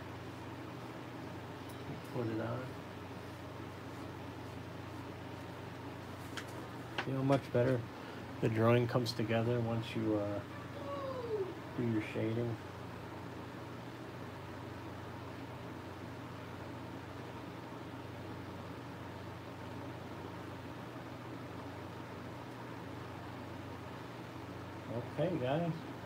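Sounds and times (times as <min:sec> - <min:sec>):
electric fan running: 0:00.0 - 0:26.0.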